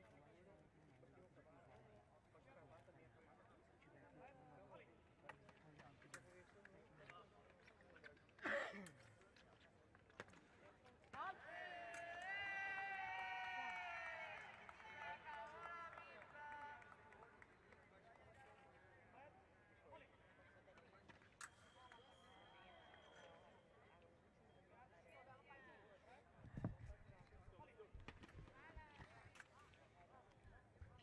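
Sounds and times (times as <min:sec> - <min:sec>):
faint steady high tone: 0:21.4 - 0:25.0.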